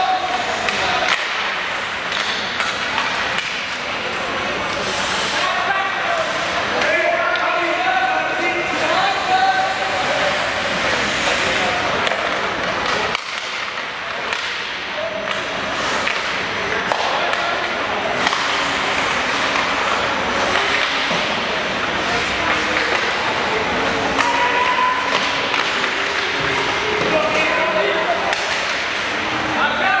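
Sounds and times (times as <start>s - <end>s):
hockey sticks and puck clacking: 0.0s - 30.0s
skates swishing on ice: 3.9s - 6.8s.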